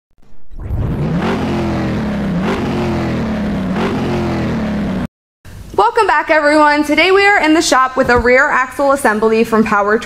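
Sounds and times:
car engine revving: 0:00.3 - 0:05.1.

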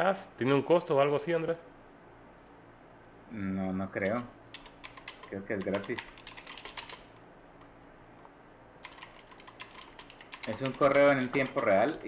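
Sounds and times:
typing on computer keyboard: 0:04.0 - 0:07.1, 0:08.8 - 0:12.0.

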